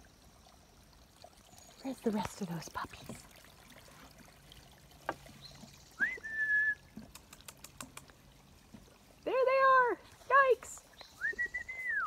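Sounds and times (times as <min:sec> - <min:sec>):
whistled note: 0:06.0 - 0:06.8
faint clicks: 0:07.0 - 0:08.2.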